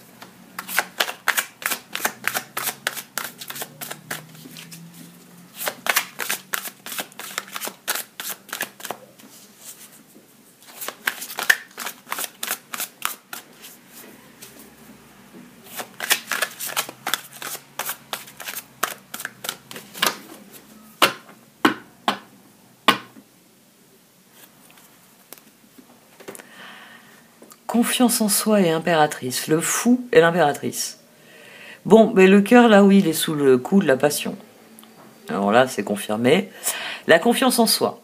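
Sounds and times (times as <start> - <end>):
cards being shuffled: 0.2 - 10.0, 10.6 - 14.6, 15.7 - 20.6.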